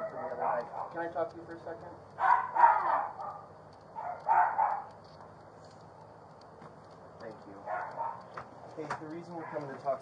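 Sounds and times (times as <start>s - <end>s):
dog barking: 0.0s - 1.1s, 2.2s - 4.9s, 7.6s - 8.3s, 9.3s - 9.8s.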